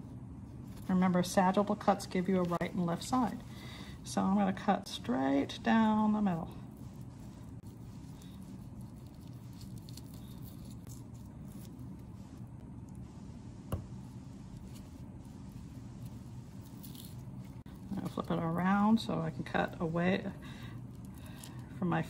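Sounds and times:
low room hum: 0.0 - 22.0.

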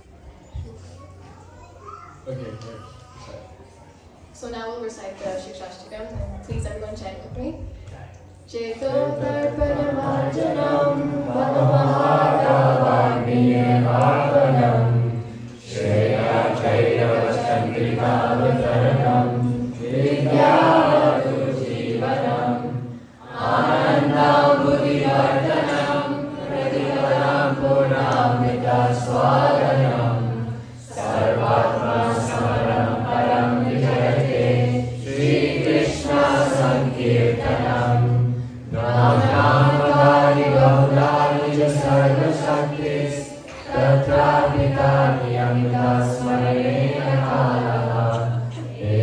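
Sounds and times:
group chanting in unison: 8.7 - 49.0.

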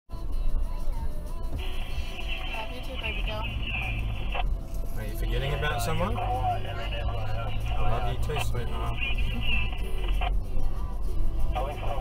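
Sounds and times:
engine and road rumble: 0.1 - 12.0
music playing: 0.1 - 12.0
voice: 2.2 - 4.1, 5.0 - 10.9, 11.5 - 12.0.

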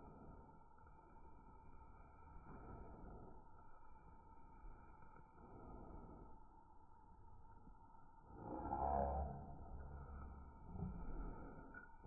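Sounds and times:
faint low rumble: 0.0 - 12.0
thin steady tone: 0.0 - 12.0.

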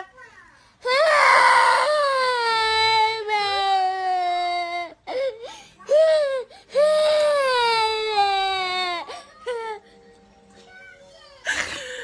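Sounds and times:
toddler crying: 0.8 - 9.8.

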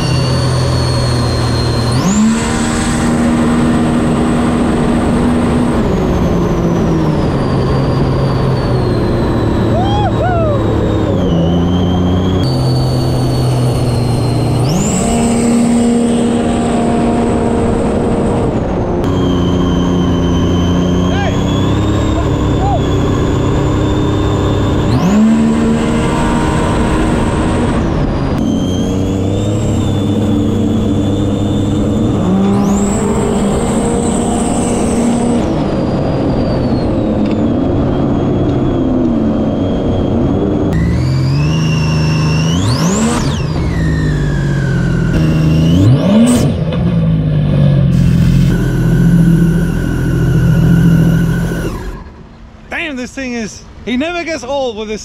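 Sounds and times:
jet ski engine revving: 0.0 - 52.8
supercharger whine: 0.0 - 55.0.

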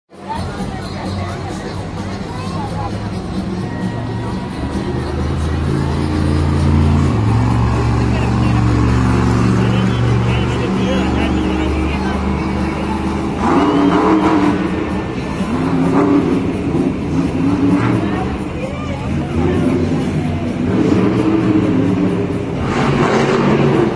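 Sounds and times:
monster truck engine revving: 0.4 - 23.9.

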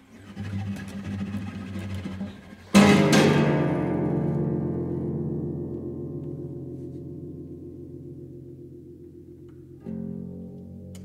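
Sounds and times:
guitar duet: 1.9 - 11.0.

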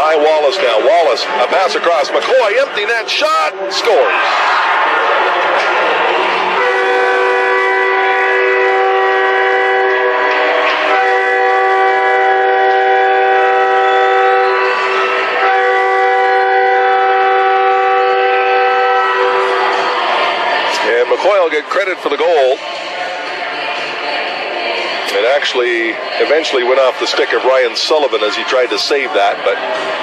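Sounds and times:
crowd noise: 0.0 - 30.0
arena goal horn blasts: 6.5 - 20.1.

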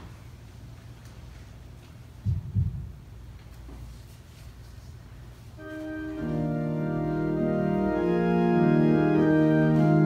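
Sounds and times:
steady low hum: 0.0 - 10.0
dull low thumps: 2.2 - 3.2.

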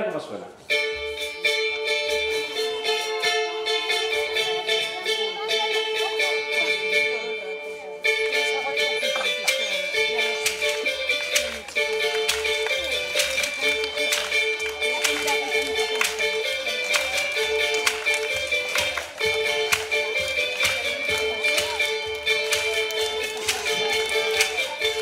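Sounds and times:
high-pitched lute strumming: 0.6 - 25.0
hand percussion tapping: 8.0 - 25.0.

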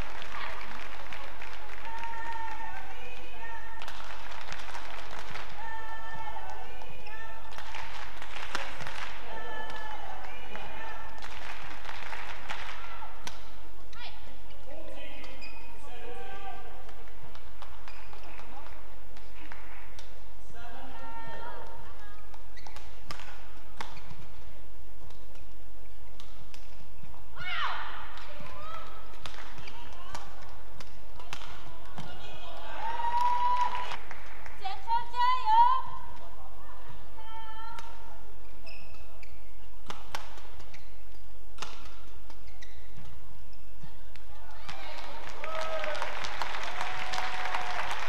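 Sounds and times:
shoes squeaking on court: 14.4 - 15.8, 17.7 - 18.6, 22.4 - 23.1, 38.4 - 43.9
racket hitting shuttlecock: 39.8 - 43.2.

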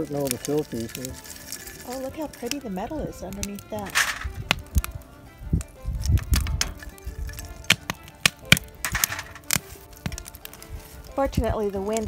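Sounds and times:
light background music: 0.0 - 12.0
molten lead crackling in skillet: 0.0 - 12.0
wind rumble on microphone: 2.0 - 8.0, 10.0 - 12.0.

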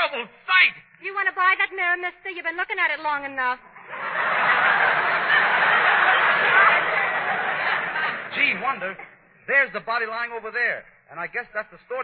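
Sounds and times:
studio audience laughing: 3.8 - 9.2.

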